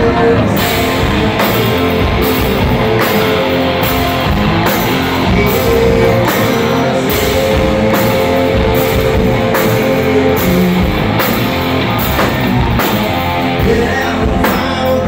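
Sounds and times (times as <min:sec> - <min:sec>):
drum kit steady beat: 0:00.0 - 0:15.0
electric guitar: 0:00.0 - 0:15.0.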